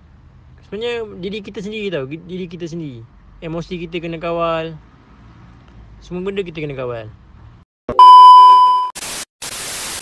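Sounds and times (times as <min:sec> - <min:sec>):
high-pitched test beep: 0:07.9 - 0:09.0
tv static hiss: 0:09.0 - 0:10.0.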